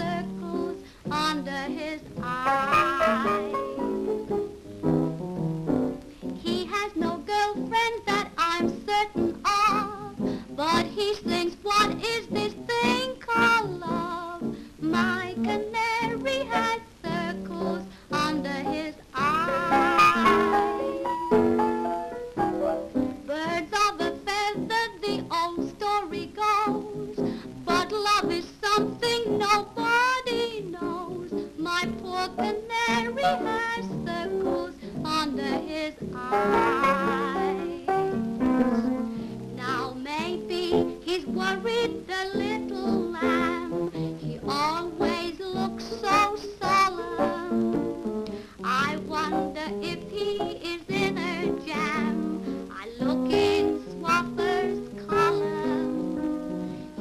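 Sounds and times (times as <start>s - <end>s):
woman singing with vibrato: 0.0s - 4.0s, 6.4s - 20.9s, 23.3s - 39.0s, 39.6s - 47.9s, 48.6s - 56.3s
grand piano accompaniment: 0.0s - 57.0s.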